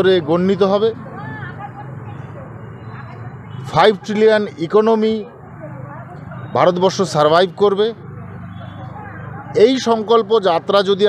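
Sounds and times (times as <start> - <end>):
outdoor street noise hum: 0.0 - 11.0
man speaking: 3.7 - 5.3.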